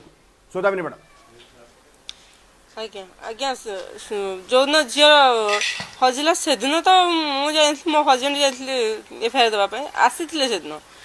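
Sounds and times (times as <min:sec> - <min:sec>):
woman speaking: 0:02.8 - 0:10.8.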